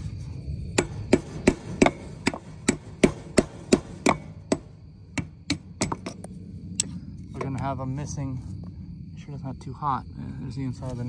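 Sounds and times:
hammer striking metal: 0.8 - 6.2.

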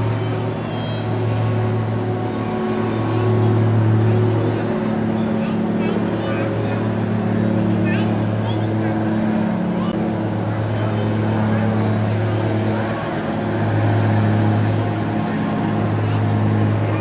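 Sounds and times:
faint indistinct voices: 0.0 - 17.0
low mechanical hum: 0.0 - 17.0.

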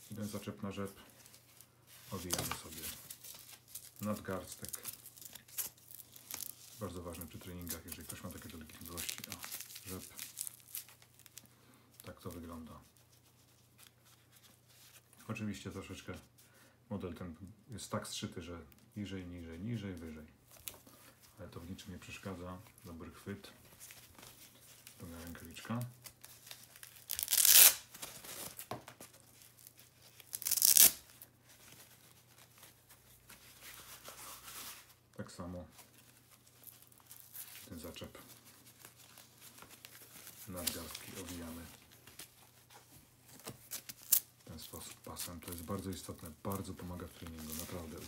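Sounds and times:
glove rustling: 0.0 - 16.4, 18.8 - 48.0
velcro strap ripping open: 2.2 - 6.8, 7.8 - 11.5, 25.8 - 31.8, 43.3 - 44.4.

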